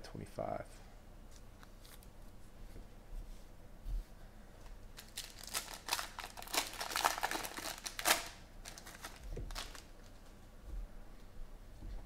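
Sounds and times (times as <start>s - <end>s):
foil wrapper crinkling: 4.9s - 10.2s.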